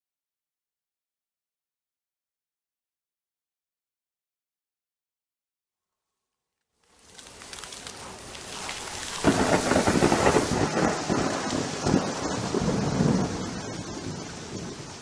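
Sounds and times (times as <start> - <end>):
rain hissing: 6.8 - 15.0
thunder rumbling: 7.8 - 15.0.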